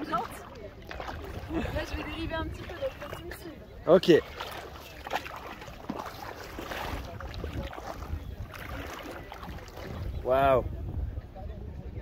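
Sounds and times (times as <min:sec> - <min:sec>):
light water sounds: 0:00.0 - 0:10.6
wind rumbling on microphone: 0:00.0 - 0:12.0.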